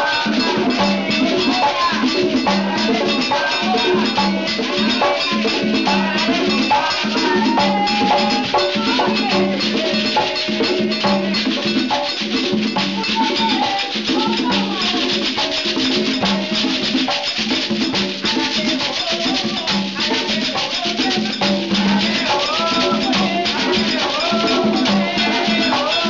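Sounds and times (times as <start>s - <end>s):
conga drums played by hand: 0.0s - 26.0s
rattle shaking: 0.0s - 26.0s
voices singing: 0.0s - 26.0s.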